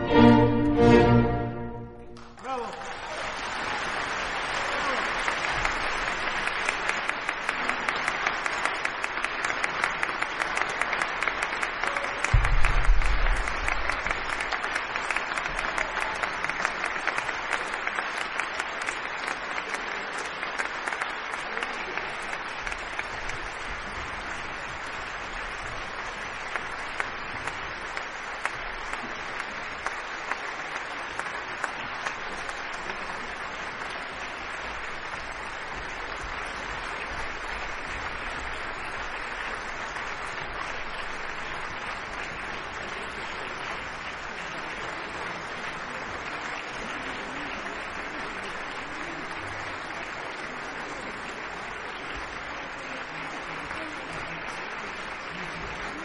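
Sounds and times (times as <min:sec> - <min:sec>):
audience applauding: 0:00.0 - 0:56.0
low rumble: 0:12.3 - 0:14.3.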